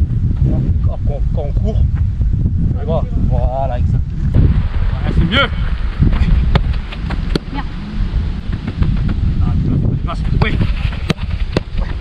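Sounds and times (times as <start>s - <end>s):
wind buffeting microphone: 0.0s - 12.0s
football thuds: 6.0s - 7.6s, 8.4s - 9.4s, 10.1s - 12.0s.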